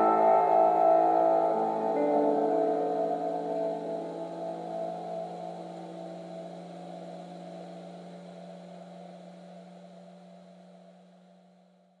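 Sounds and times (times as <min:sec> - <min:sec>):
piano chord ringing: 0:00.0 - 0:05.8.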